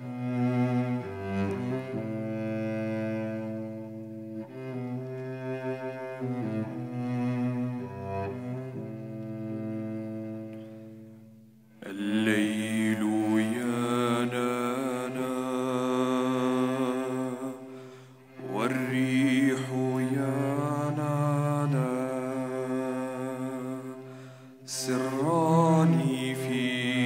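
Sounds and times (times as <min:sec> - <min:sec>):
cello low drone: 0:00.0 - 0:27.0.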